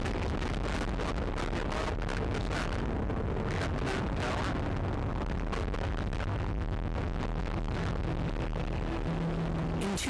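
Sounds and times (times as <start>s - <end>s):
low rumble of rocket launch: 0.0s - 10.0s.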